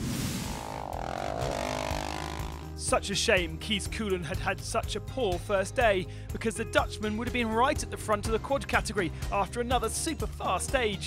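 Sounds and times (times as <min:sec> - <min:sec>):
pitched sweep: 0:00.0 - 0:02.8
background music drone: 0:00.0 - 0:08.4.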